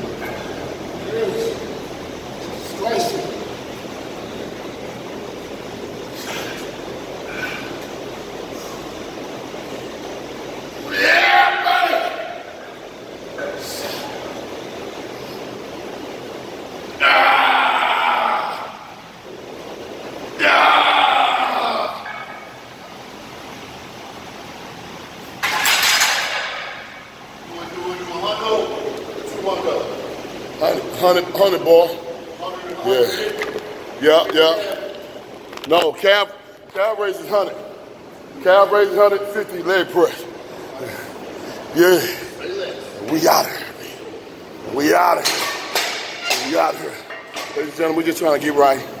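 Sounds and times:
steady room hum: 0.0 - 49.0.

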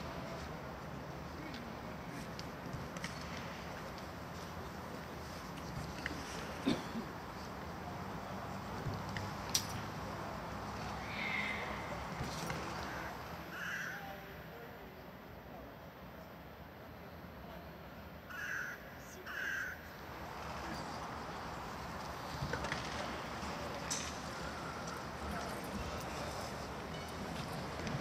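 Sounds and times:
distant voices: 0.0 - 28.0
faint outdoor background noise: 0.0 - 28.0.

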